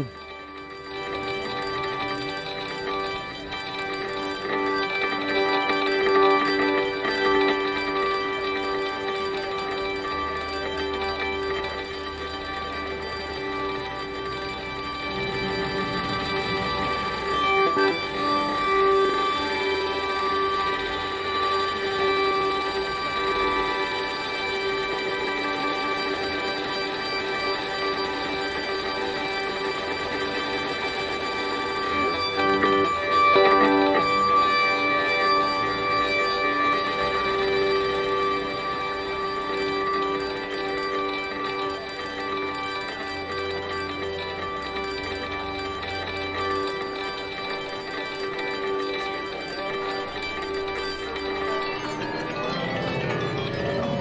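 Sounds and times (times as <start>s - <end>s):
synthesizer sustained pad: 0.0s - 54.0s.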